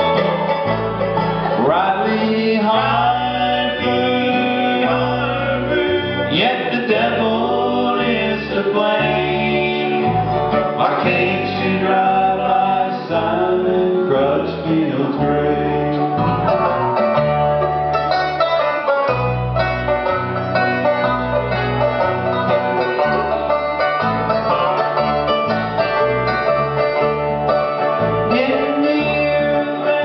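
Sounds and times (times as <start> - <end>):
banjo picking: 0.0 - 30.0
bass line: 0.0 - 30.0
mandolin: 0.0 - 30.0
strummed acoustic guitar: 0.0 - 30.0.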